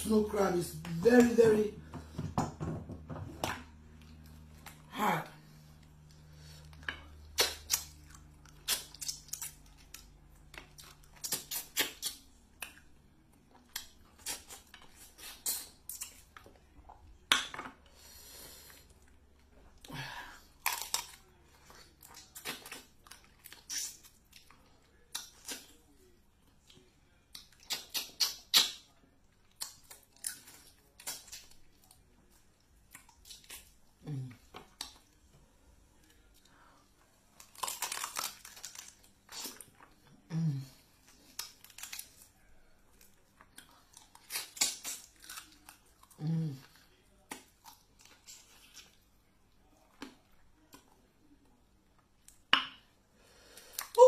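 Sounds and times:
crab shells cracking: 37.4 - 39.2.

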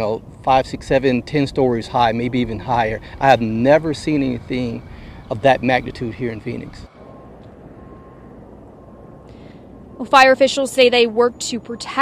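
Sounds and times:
fire engines and pumps rumbling: 0.0 - 12.0.

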